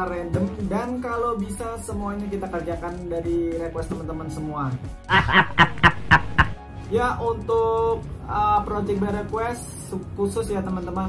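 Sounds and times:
background music: 0.0s - 11.0s
man chuckling: 5.1s - 6.6s.

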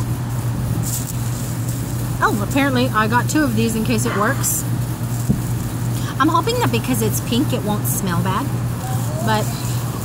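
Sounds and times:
air-conditioning unit running: 0.0s - 10.0s.

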